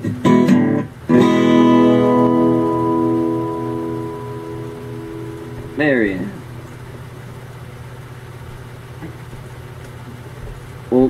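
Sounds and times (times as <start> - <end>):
low background hum: 0.0 - 11.0
person speaking a word: 5.8 - 6.4.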